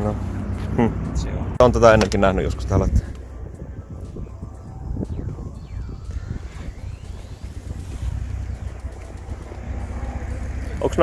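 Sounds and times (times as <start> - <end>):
wind buffeting microphone: 0.2 - 11.0
faint whine changing pitch: 1.4 - 11.0.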